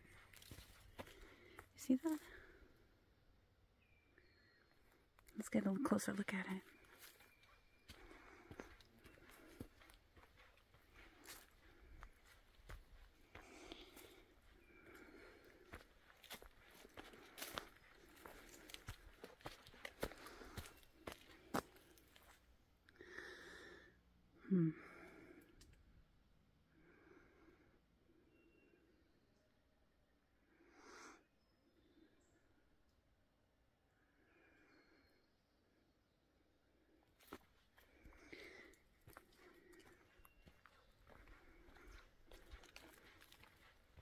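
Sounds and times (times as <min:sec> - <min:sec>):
footsteps through undergrowth: 0:00.0 - 0:02.2, 0:06.6 - 0:22.4, 0:37.2 - 0:44.0
woman breathing softly: 0:10.9 - 0:19.0, 0:22.9 - 0:25.6, 0:34.0 - 0:35.4, 0:37.8 - 0:40.4.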